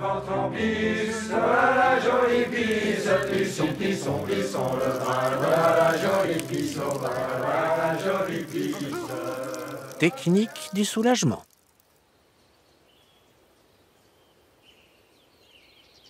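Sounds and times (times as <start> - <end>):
choir chanting: 0.0 - 10.7.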